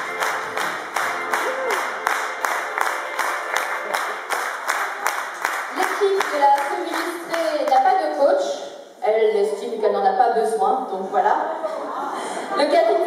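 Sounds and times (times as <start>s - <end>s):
audience clapping in time: 0.0s - 7.9s.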